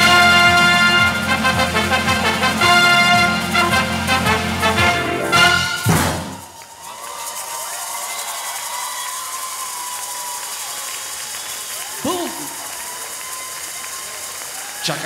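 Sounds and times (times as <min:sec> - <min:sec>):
jive music: 0:00.0 - 0:06.5
audience applauding: 0:00.0 - 0:15.0.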